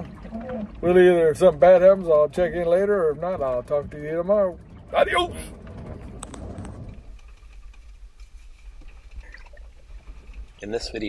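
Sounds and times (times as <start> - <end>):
wind and sea rumble: 0.0 - 11.0.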